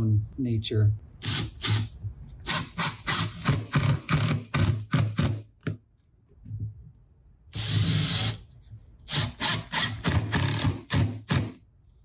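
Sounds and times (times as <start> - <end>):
impact driver driving screw into wood: 1.2 - 5.5, 7.5 - 8.4, 9.1 - 11.6.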